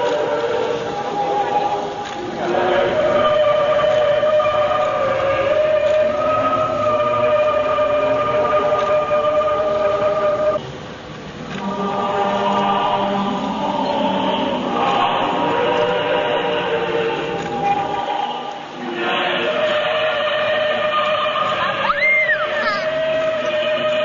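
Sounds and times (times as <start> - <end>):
choir singing a slow hymn: 0.0 - 24.0.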